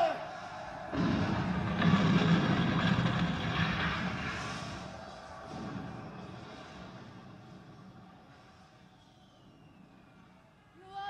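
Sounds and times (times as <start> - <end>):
rushing rumbling roar: 0.8 - 8.0.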